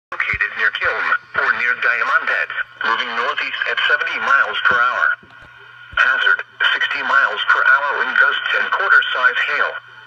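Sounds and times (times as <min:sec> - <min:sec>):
radio broadcast voice: 0:00.1 - 0:10.0
steady low hum: 0:00.1 - 0:10.0.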